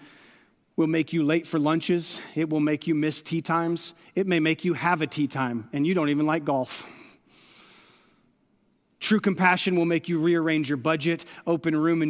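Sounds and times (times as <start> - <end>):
man inhaling: 0.0 - 0.7, 6.8 - 8.4.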